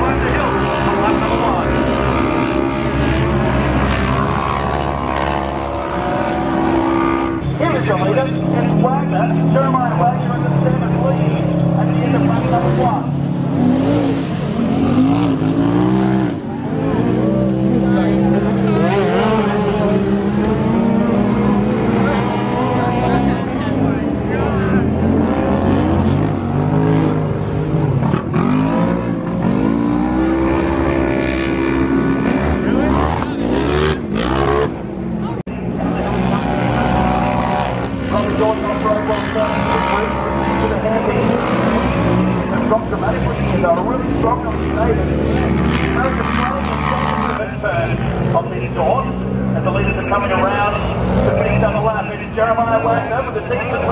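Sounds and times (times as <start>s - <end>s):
race car engine revving: 0.0s - 53.9s.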